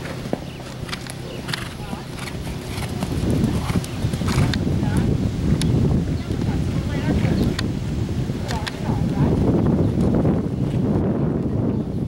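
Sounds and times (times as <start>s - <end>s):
horse hoofbeats: 0.0s - 5.1s.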